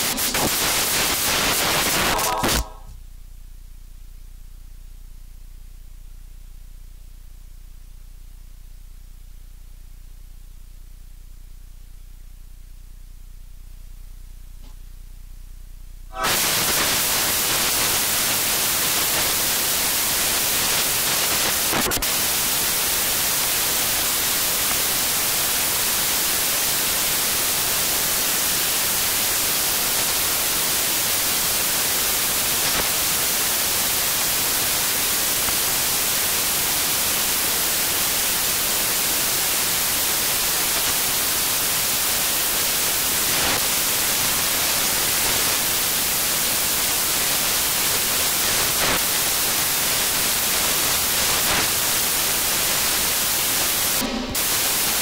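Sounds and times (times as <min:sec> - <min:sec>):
static hiss: 0:00.0 - 0:03.0, 0:16.1 - 0:55.0.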